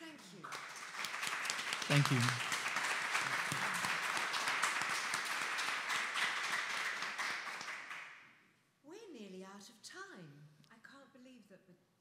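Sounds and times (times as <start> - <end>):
audience clapping: 0.0 - 8.3.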